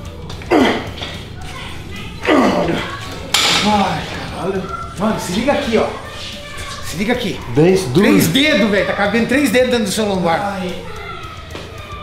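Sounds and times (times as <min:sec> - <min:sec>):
man grunting with effort: 0:02.2 - 0:02.9.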